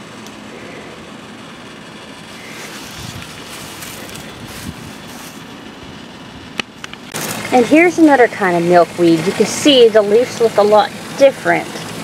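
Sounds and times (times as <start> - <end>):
outdoor background noise: 0.0 - 12.0.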